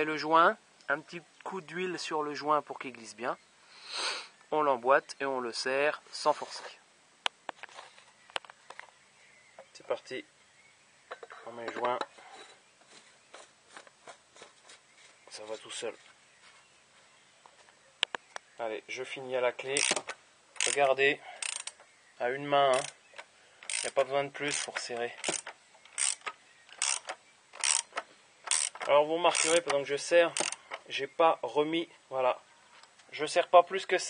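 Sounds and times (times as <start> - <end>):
cap thread clicking and scraping: 19.7 - 21.9, 22.7 - 30.9.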